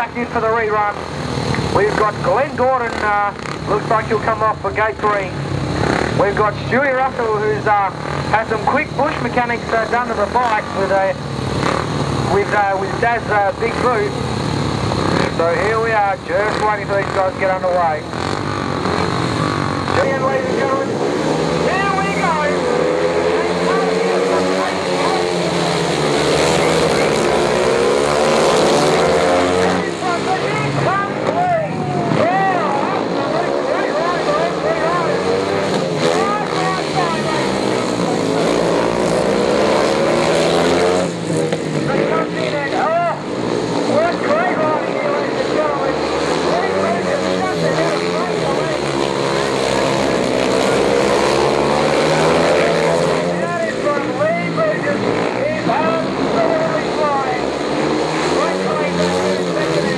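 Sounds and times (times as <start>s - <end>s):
motorcycle engines racing: 0.0s - 59.9s.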